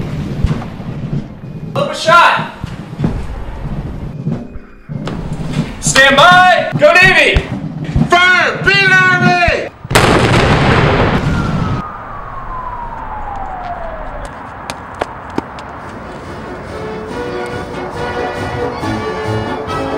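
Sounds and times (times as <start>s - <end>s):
cannon boom: 2.7s - 7.8s, 9.8s - 14.2s
music: 16.1s - 19.9s.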